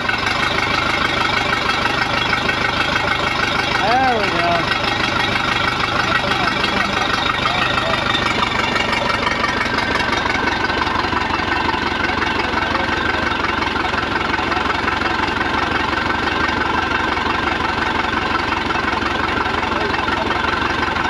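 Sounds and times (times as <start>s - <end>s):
boat engine idling: 0.0s - 21.0s.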